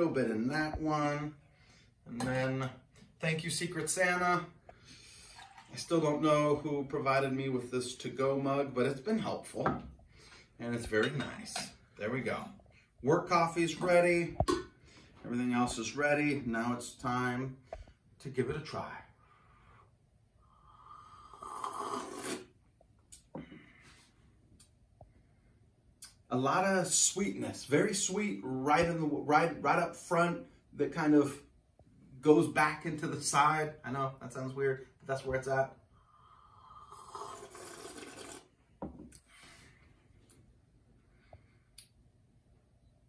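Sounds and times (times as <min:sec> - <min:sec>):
slurping sip of coffee: 0:21.2 - 0:22.6, 0:36.7 - 0:38.6
cup set down on wooden counter: 0:38.8 - 0:39.1.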